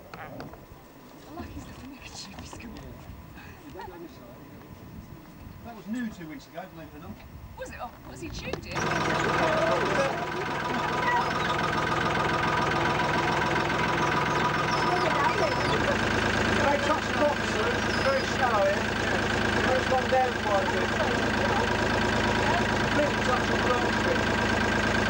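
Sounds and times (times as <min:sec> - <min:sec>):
scattered voices: 0:07.6 - 0:24.7
boat engine droning: 0:08.4 - 0:25.0.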